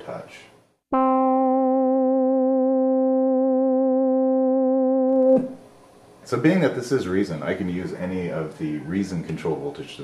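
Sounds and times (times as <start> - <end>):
analog synth note with vibrato: 0.9 - 5.6.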